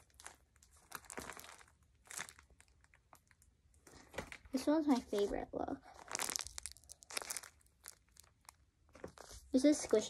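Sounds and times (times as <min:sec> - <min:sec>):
paper crinkling and crackling: 0:00.0 - 0:10.0.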